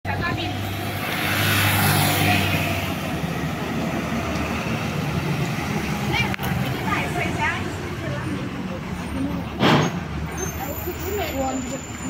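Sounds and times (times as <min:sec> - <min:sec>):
road noise: 0:00.0 - 0:12.0
diesel bus passing: 0:00.1 - 0:12.0.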